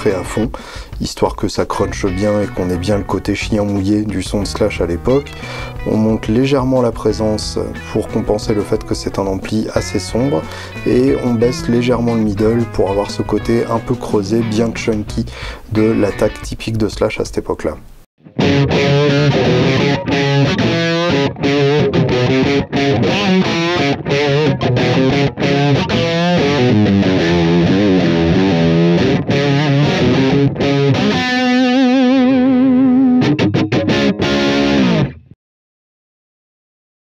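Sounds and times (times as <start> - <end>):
distorted electric guitar riffs: 1.8 - 3.7, 4.3 - 16.6, 18.2 - 35.4.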